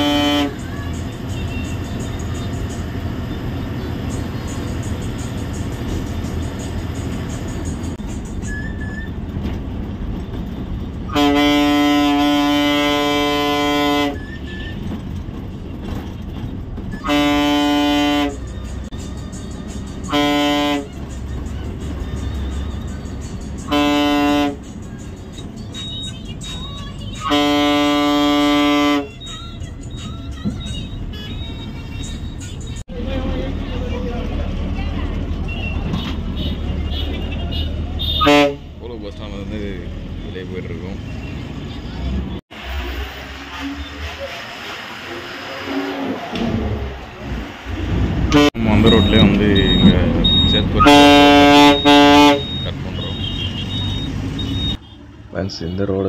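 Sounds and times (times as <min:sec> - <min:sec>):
bus horn blasts: 0:00.0 - 0:02.8, 0:11.0 - 0:14.9, 0:16.9 - 0:19.0, 0:19.6 - 0:21.3, 0:22.3 - 0:24.8, 0:25.9 - 0:29.4, 0:30.0 - 0:32.9, 0:35.4 - 0:38.8, 0:48.3 - 0:55.0
diesel engine and road noise: 0:00.0 - 0:56.0.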